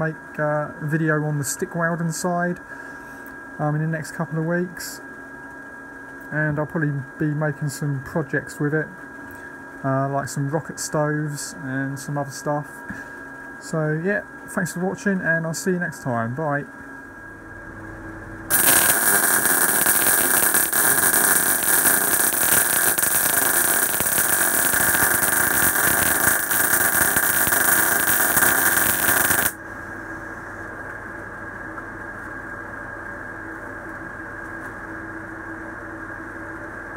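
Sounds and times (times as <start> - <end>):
steady hum: 0.0 - 36.9
welding arc burning: 18.5 - 29.6.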